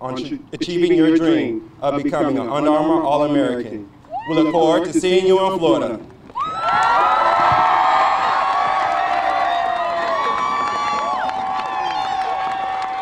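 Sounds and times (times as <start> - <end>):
high-pitched yells: 4.1 - 4.8
group cheering and whooping: 4.1 - 4.9, 6.3 - 13.0
hand clapping: 8.8 - 13.0.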